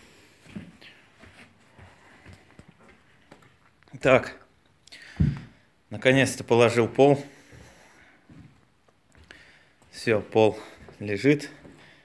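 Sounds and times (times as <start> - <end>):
footsteps on wooden planks: 0.4 - 3.6, 5.2 - 5.6, 7.3 - 12.0.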